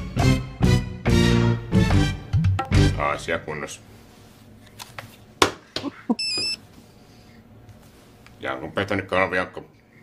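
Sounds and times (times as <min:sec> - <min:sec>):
short electronic phone beep: 0:06.2 - 0:06.6.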